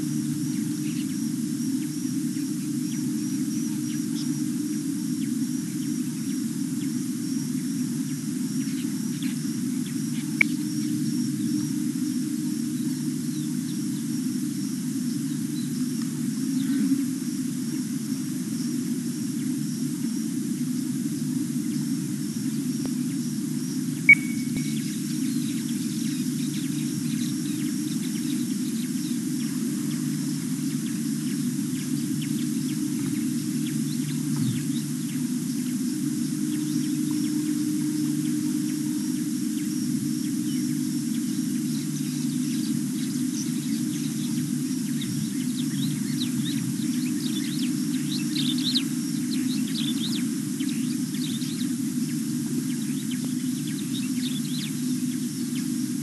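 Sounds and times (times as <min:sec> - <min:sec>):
steady low hum: 0:00.0 - 0:56.0
small birds chirping: 0:24.0 - 0:27.3.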